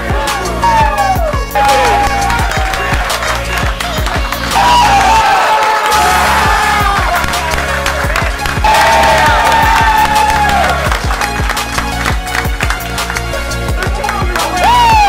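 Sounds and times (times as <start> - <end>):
music with steady beat: 0.0 - 15.0
team cheering and clapping: 0.0 - 15.0.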